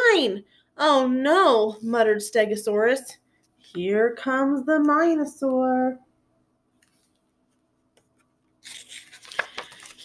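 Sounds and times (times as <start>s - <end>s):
book pages rustling: 8.0s - 10.0s.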